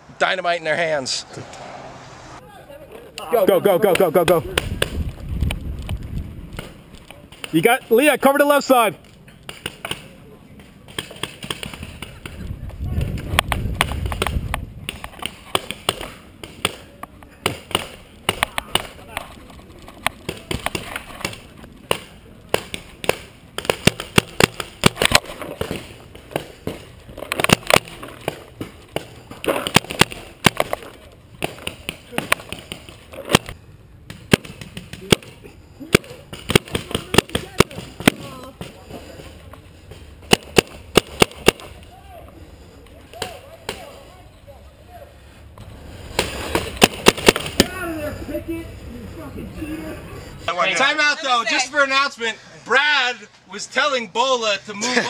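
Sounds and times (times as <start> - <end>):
low rumble: 0.0 - 2.7
paintball markers firing: 20.2 - 38.8, 40.2 - 41.8, 46.2 - 47.8.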